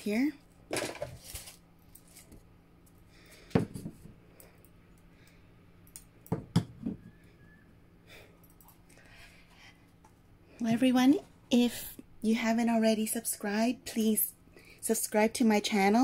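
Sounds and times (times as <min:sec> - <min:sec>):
faint room hum: 0:00.0 - 0:16.0.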